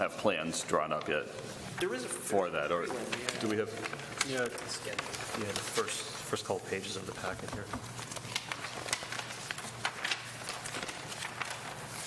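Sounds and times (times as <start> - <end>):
paper pages rustling: 0.7 - 12.0.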